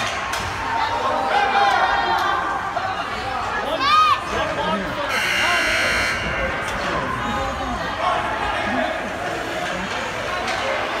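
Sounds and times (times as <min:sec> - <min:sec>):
ice rink buzzer: 0:05.1 - 0:06.6.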